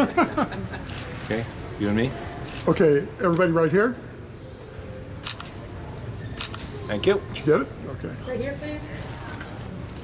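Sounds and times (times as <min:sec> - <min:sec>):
camera shutter double click: 0:05.2 - 0:05.6, 0:06.4 - 0:06.7.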